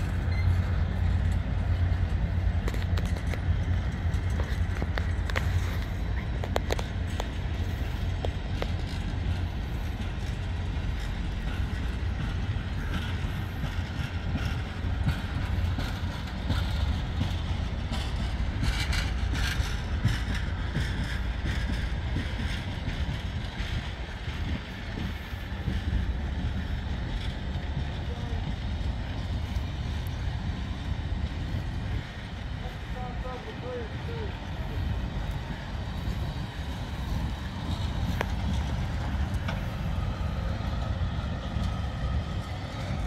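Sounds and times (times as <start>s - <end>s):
train wheels rumbling on rails: 0.0s - 43.0s.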